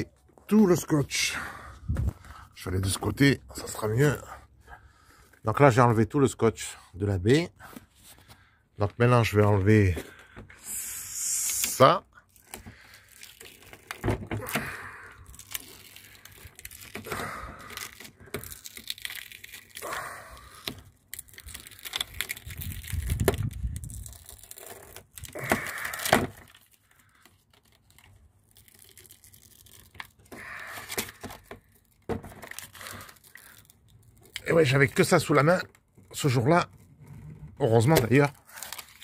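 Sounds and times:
tape crinkling: 7.7 - 39.0
tape ripping off glass: 11.4 - 36.0, 36.7 - 39.0.

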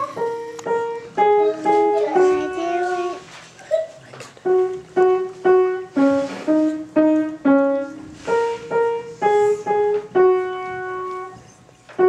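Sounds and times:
child playing simple piano tune: 0.0 - 3.4, 4.4 - 12.0.

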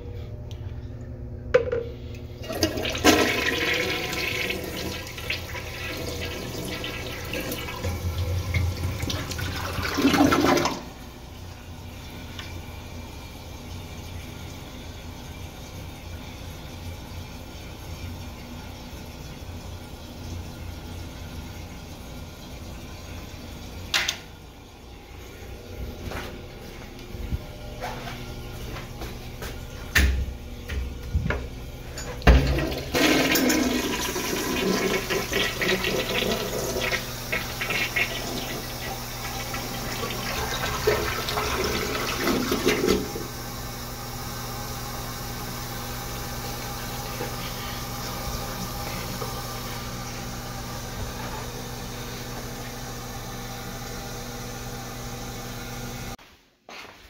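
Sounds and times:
toilet flush rushing: 1.6 - 24.4, 31.3 - 56.2
toilet refilling hiss: 2.4 - 11.2, 32.4 - 50.8.

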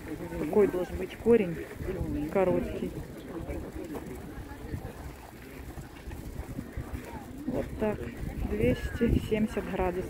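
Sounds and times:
faint voices talking: 0.0 - 10.0
wind rumble on microphone: 0.6 - 10.0.

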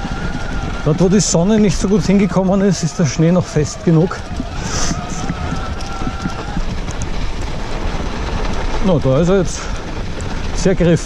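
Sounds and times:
bike tyres crunching on snow: 0.0 - 11.0
wind on microphone: 0.0 - 11.0.

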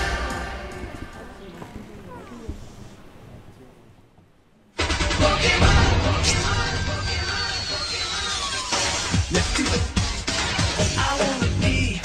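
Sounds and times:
faint voices: 0.0 - 4.8.

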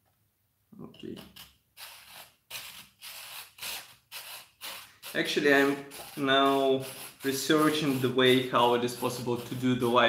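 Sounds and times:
hobby saw cutting resin: 1.2 - 10.0.

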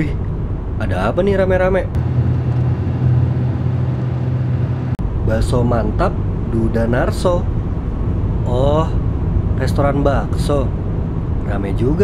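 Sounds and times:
car engine droning: 1.9 - 6.5.

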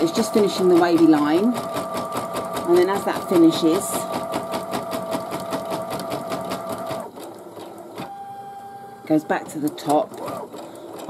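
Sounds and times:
embroidery machine stitching: 0.0 - 8.2, 9.1 - 11.0.

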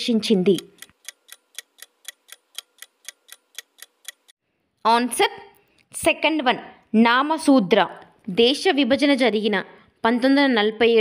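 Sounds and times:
countdown timer ticking: 0.0 - 4.3.

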